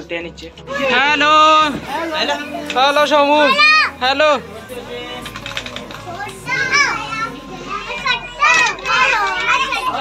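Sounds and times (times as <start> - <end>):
young children calling and chattering: 0.0 - 10.0.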